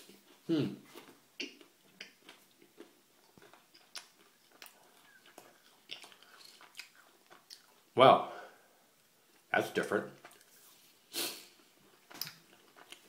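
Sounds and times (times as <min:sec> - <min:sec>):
chewing crunchy chocolate bar: 0:00.9 - 0:07.9, 0:11.8 - 0:13.0.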